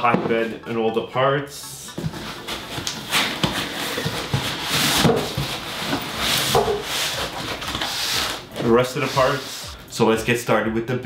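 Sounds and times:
foam tray scraping cardboard box: 0:02.2 - 0:09.7.

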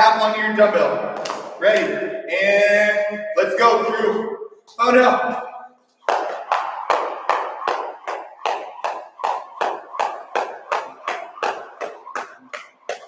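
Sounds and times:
jump rope slapping floor: 0:01.2 - 0:01.9, 0:06.0 - 0:13.0
shoes landing: 0:06.0 - 0:13.0.

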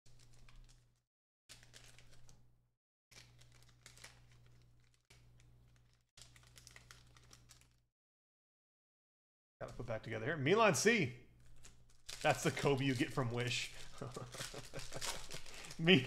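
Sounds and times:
foil wrapper crinkling: 0:00.1 - 0:02.4, 0:03.1 - 0:07.8, 0:11.4 - 0:16.0
low electrical hum: 0:03.2 - 0:07.8, 0:09.6 - 0:16.0.

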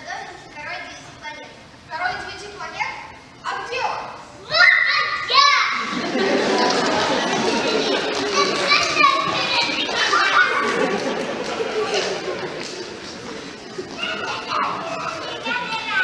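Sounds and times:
children talking and calling out: 0:00.0 - 0:16.0
children calling: 0:03.5 - 0:16.0.

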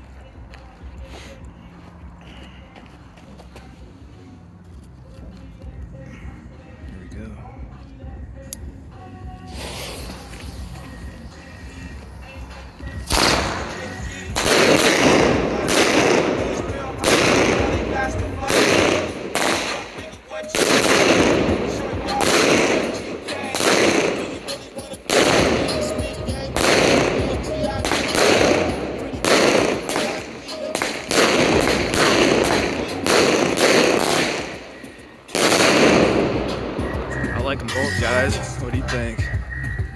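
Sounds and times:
fuse burning: 0:09.4 - 0:19.9
firework shots firing: 0:13.0 - 0:37.0.

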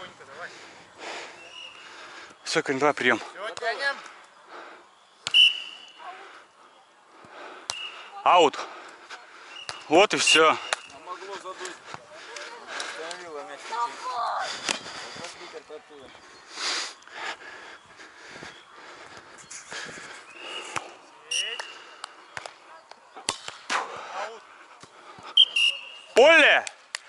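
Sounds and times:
players' voices: 0:00.0 - 0:27.0
referee's whistle blasts: 0:05.2 - 0:06.0, 0:07.7 - 0:08.1, 0:21.3 - 0:21.7, 0:25.4 - 0:26.2.

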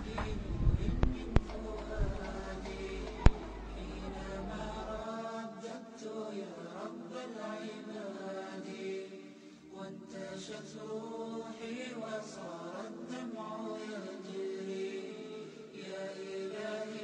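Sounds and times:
person chanting slowly: 0:00.0 - 0:17.0.

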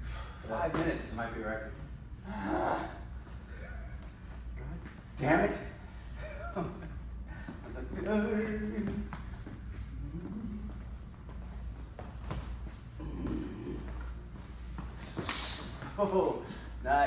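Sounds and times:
men breathing hard and grunting: 0:02.2 - 0:04.0, 0:12.9 - 0:14.3.

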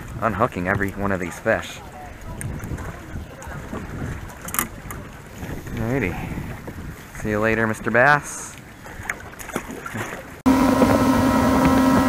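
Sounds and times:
wind rumbling on microphone: 0:00.0 - 0:08.0
boat deck ambience: 0:00.0 - 0:12.0.

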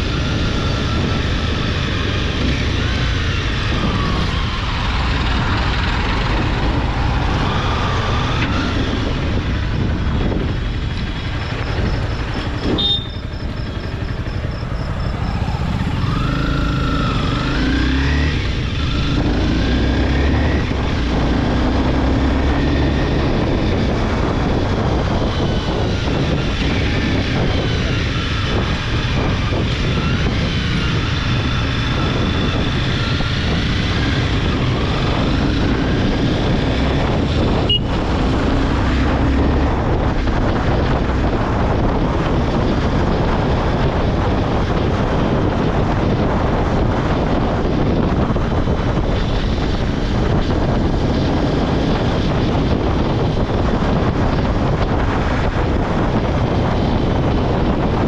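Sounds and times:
motorcycle engine revving: 0:00.0 - 0:58.0
road and wind noise: 0:00.0 - 0:58.0.

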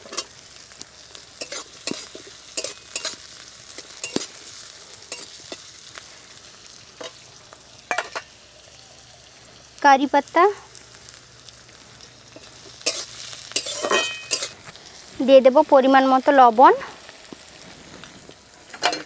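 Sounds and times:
vegetables sizzling in hot oil: 0:00.0 - 0:19.0
metal spatula scraping a pan: 0:01.4 - 0:04.4, 0:05.1 - 0:05.7, 0:12.4 - 0:14.6.

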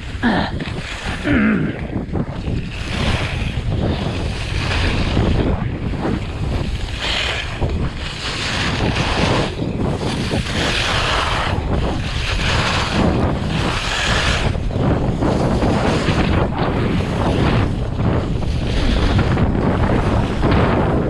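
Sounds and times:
skis carving on hard snow: 0:00.0 - 0:01.3, 0:01.9 - 0:21.0
wind rushing over microphone: 0:00.0 - 0:21.0.

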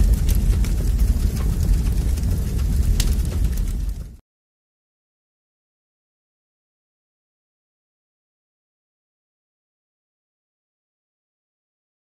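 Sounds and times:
fire rumbling and crackling: 0:00.0 - 0:04.2.

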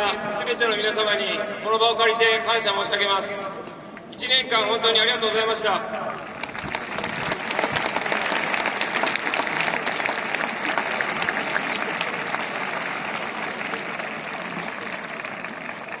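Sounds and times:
stadium crowd applauding: 0:06.1 - 0:16.0.

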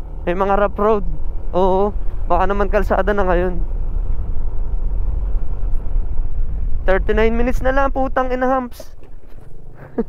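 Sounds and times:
scooter engine: 0:00.0 - 0:08.0
wind rumble on microphone: 0:00.0 - 0:10.0
man's voice: 0:00.3 - 0:03.6, 0:06.8 - 0:09.0.

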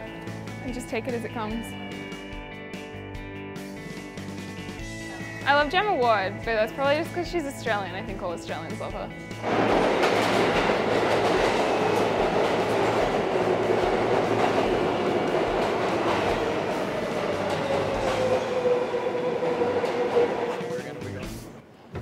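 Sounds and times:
subway train wheels clattering: 0:08.5 - 0:22.0
falling whine of slowing train: 0:09.2 - 0:21.9.

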